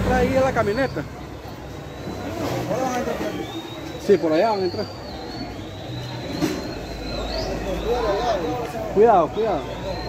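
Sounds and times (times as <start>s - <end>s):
bus engine running: 0.0s - 3.7s.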